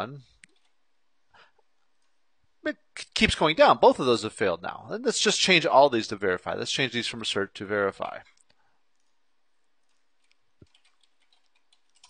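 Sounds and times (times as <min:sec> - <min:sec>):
keyboard keys typing: 0:00.4 - 0:00.8, 0:09.8 - 0:12.0.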